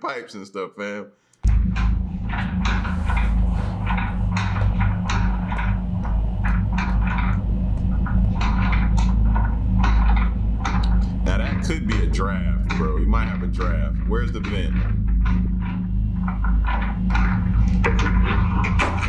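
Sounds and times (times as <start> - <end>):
loud steady low hum: 1.4 - 19.0
closet doors rattling: 1.5 - 19.0.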